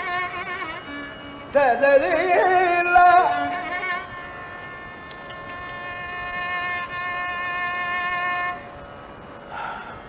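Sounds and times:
violin sustaining a note: 0:00.0 - 0:01.7, 0:02.6 - 0:08.7
buzzy drone note: 0:00.0 - 0:09.2
person singing: 0:01.5 - 0:04.0.

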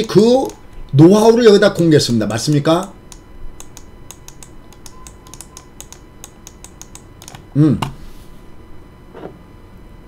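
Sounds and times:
computer mouse and keyboard clicks: 0:00.3 - 0:00.9, 0:02.2 - 0:07.4.

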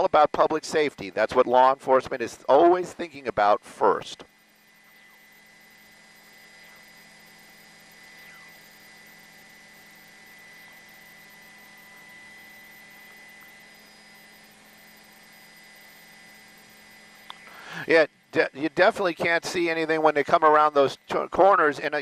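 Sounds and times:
microphone line hum and hiss: 0:00.0 - 0:22.0.

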